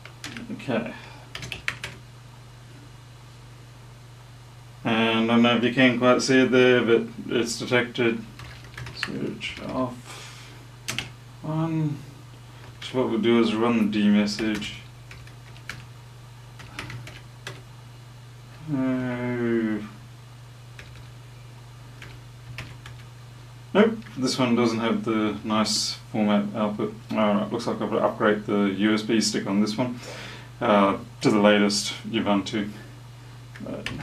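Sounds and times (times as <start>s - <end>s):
computer keyboard keystrokes: 0.0s - 0.5s, 1.3s - 2.0s, 8.4s - 9.8s, 10.9s - 11.1s, 14.4s - 15.9s, 16.6s - 17.6s, 20.8s - 21.1s, 22.0s - 23.1s
computer humming: 0.0s - 34.0s
keyboard keystrokes: 1.4s - 2.0s, 8.4s - 9.8s, 10.9s - 11.1s, 16.6s - 17.6s.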